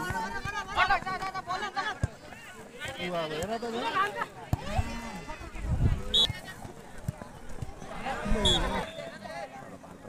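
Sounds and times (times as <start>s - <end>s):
players and spectators shouting: 7.8s - 9.6s
referee's whistle blast: 8.4s - 9.2s.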